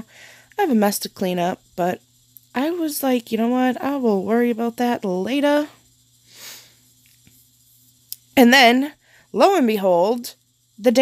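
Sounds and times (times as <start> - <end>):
soft breath: 0.0 - 0.6, 6.2 - 7.0.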